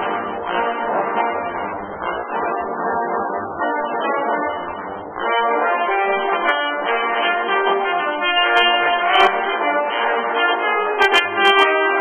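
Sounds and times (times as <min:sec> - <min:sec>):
trombone ensemble playing: 0:00.0 - 0:12.0.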